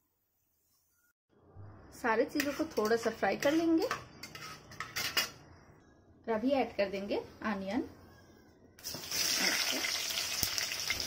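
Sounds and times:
metal spatula scraping a pot: 2.3s - 5.4s.

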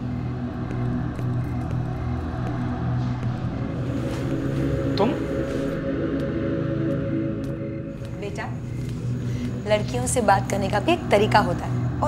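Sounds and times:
droning horror score: 0.0s - 12.0s.

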